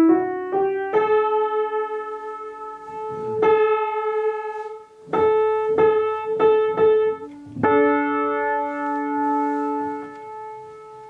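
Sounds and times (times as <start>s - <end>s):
piano note ringing: 0.0s - 11.0s.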